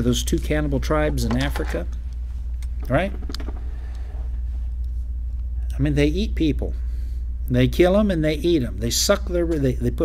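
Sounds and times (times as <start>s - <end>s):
man speaking: 0.0s - 1.9s, 2.8s - 3.3s, 7.5s - 10.0s
steady low hum: 0.0s - 10.0s.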